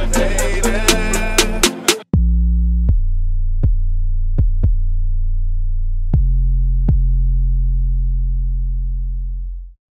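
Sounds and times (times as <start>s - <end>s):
deep sub-bass synth tone: 0.0s - 9.8s.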